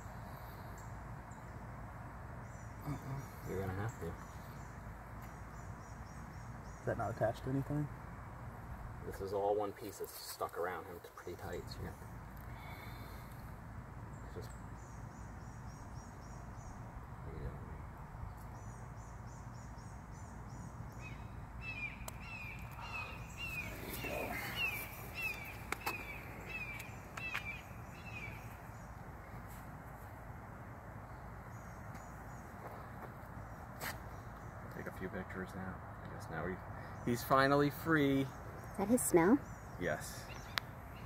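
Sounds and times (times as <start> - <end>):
low outdoor rumble: 0.0 - 41.0
bird chirping: 2.4 - 8.4, 14.1 - 29.6, 31.0 - 41.0.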